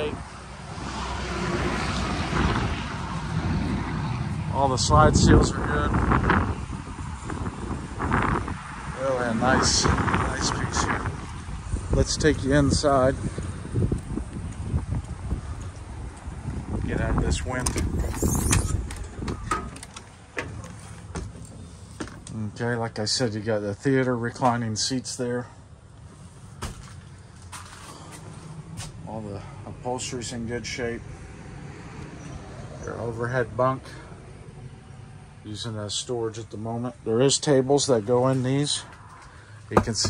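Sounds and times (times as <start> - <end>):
wind buffeting microphone: 1.6 - 21.6
door clicks and clunks: 17.5 - 22.3, 39.7 - 40.0
knocks: 39.8 - 40.0.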